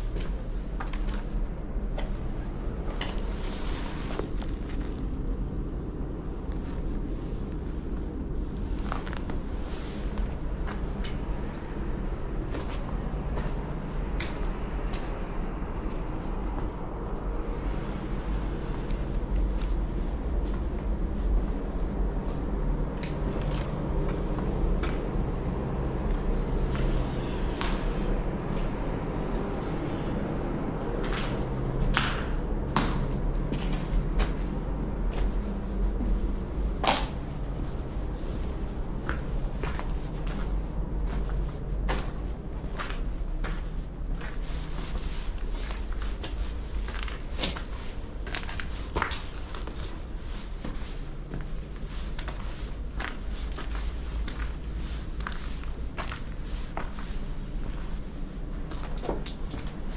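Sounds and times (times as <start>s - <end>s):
low wind rumble: 0.0s - 59.9s
footsteps crunching on rubble: 2.1s - 6.2s, 32.8s - 59.9s.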